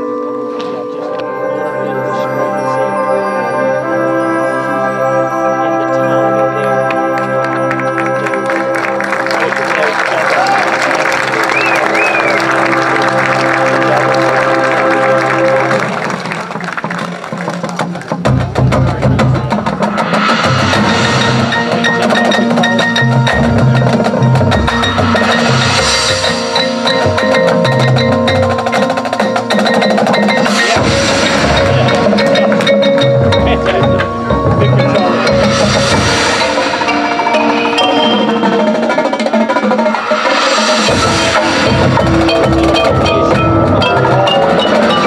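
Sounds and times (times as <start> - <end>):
mallet keyboards: 0.0 - 17.0, 17.6 - 45.0
marching band sustained chord: 10.7 - 16.4, 19.6 - 45.0
marching bass drums: 17.6 - 39.1, 40.2 - 45.0
cymbals: 18.9 - 45.0.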